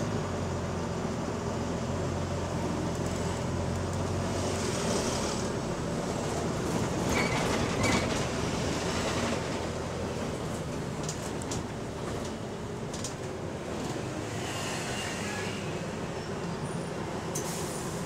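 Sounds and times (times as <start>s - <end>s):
bus diesel engine drone: 0.0s - 18.0s
hiss of air: 17.4s - 18.0s.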